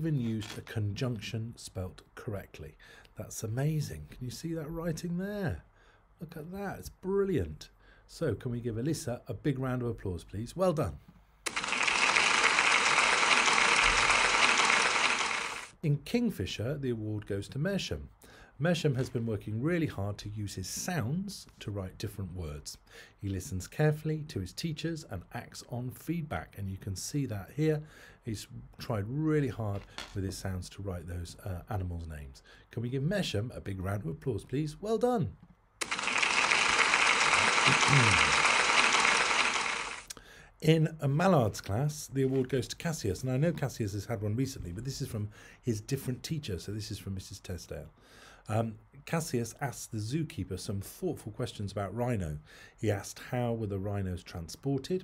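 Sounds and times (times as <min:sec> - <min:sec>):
audience clapping: 0:11.5 - 0:15.7, 0:35.8 - 0:40.1
crowd applause: 0:11.5 - 0:15.7, 0:35.8 - 0:40.1.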